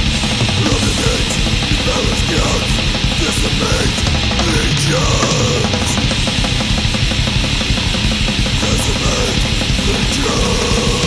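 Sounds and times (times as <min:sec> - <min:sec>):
metal song with distorted guitars: 0:00.0 - 0:11.0.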